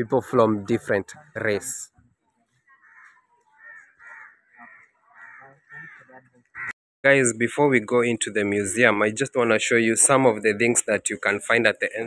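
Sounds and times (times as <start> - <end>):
crows cawing: 2.6 - 6.8.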